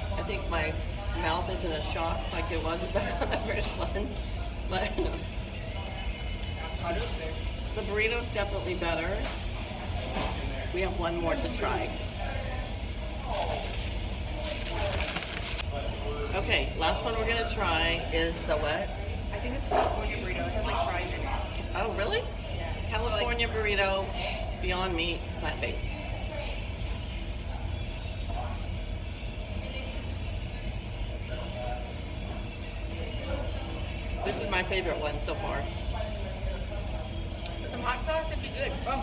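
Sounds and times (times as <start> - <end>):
food wrappers crinkling: 13.2 - 15.7.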